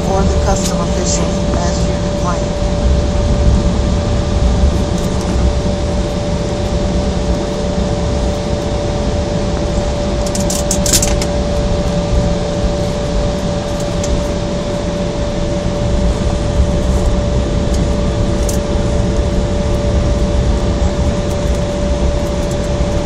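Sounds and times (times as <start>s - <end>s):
constant tone: 0.0s - 23.0s
jet engines rumbling: 0.0s - 23.0s.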